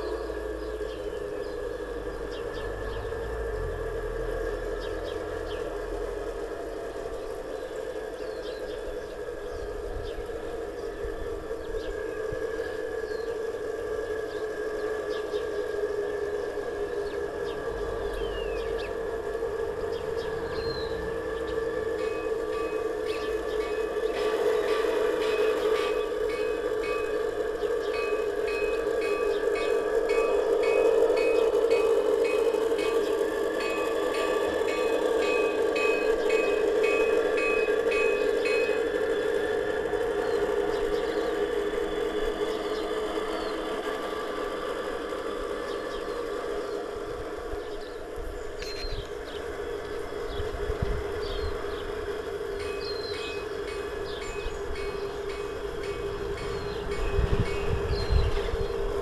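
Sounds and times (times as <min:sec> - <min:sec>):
model train humming on track: 0:00.0 - 0:59.0.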